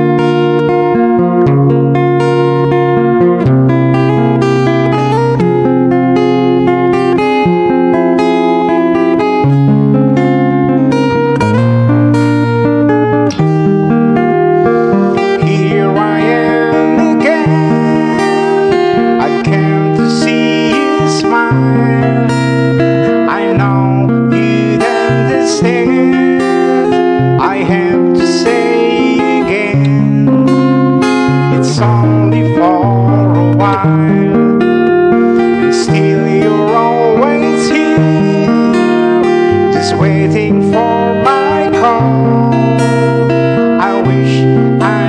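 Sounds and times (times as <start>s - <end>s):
acoustic guitar chords: 0.0s - 45.0s.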